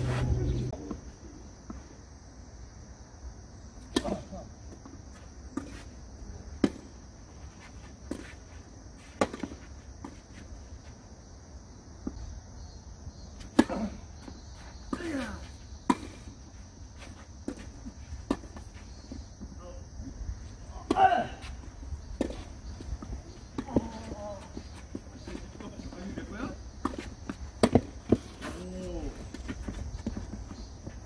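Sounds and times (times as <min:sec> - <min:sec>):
players shouting: 0:20.7 - 0:21.6
tennis ball bouncing on hard court: 0:26.8 - 0:28.2
tennis ball struck by rackets: 0:26.8 - 0:28.2.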